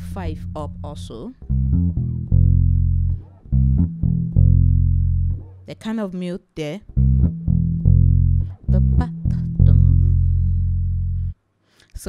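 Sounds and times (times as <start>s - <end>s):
electric bass guitar lick: 0.0s - 5.8s, 6.9s - 11.4s.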